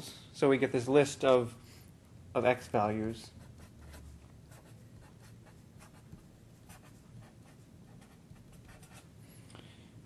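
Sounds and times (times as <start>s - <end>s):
felt-tip marker writing on paper: 3.4s - 9.1s.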